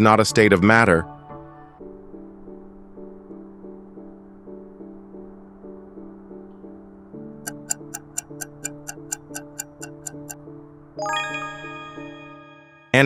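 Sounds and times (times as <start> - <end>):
soft background music: 0.0 - 13.0
clock-like ticking: 7.5 - 10.4
bright bell-like chime: 11.0 - 13.0.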